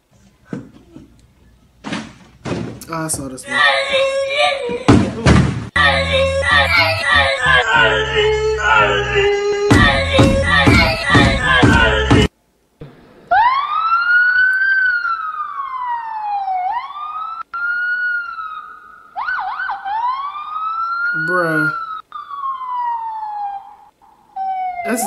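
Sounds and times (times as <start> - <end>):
boy imitating a police siren: 13.3 - 25.0.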